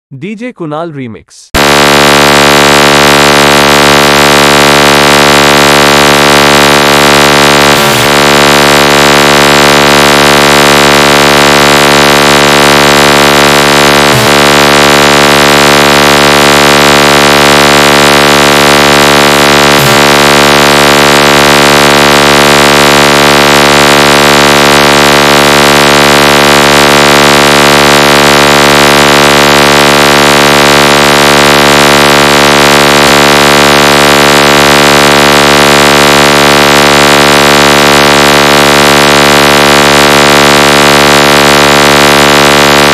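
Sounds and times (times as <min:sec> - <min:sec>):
harsh electronic buzzing tone: 0:01.6 - 0:42.9.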